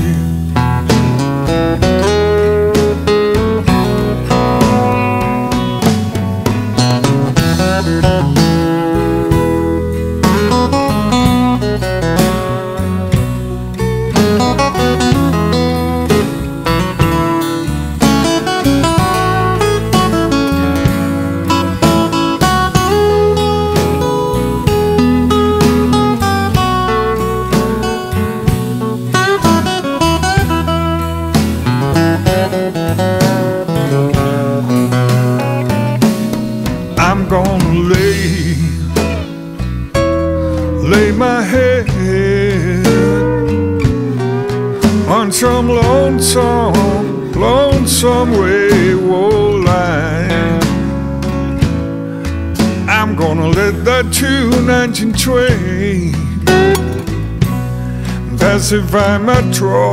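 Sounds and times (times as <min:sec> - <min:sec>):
drums keeping steady beat: 0:00.0 - 0:59.6
acoustic guitar: 0:00.0 - 0:59.9
electric bass: 0:00.0 - 0:59.9.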